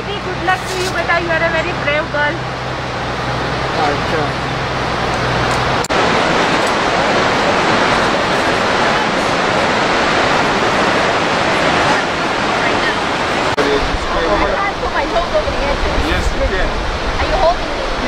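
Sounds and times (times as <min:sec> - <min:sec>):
white-water rapids rushing: 0:00.0 - 0:18.0.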